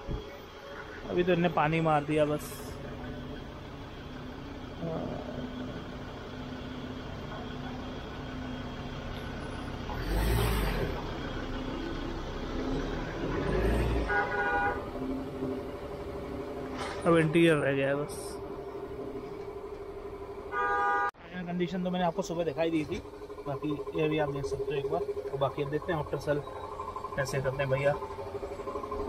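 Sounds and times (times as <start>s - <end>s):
low machine hum: 0.0s - 21.0s, 21.6s - 29.0s
car horn toot: 13.8s - 15.1s, 20.5s - 21.2s.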